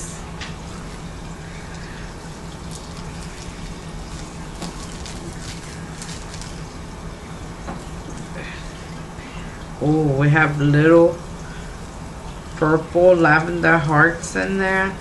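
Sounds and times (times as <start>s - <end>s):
low hum and hiss: 0.0s - 15.0s
plastic packet crinkling: 1.7s - 6.9s.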